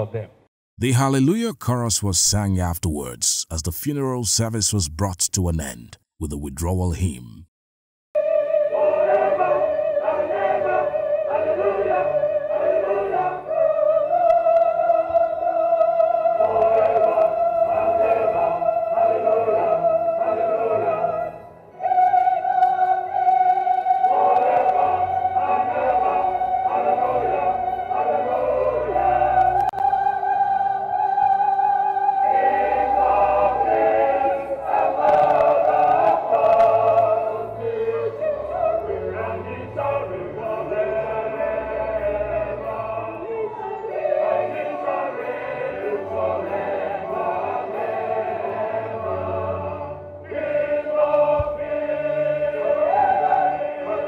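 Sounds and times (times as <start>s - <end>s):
choir singing: 8.2s - 54.0s.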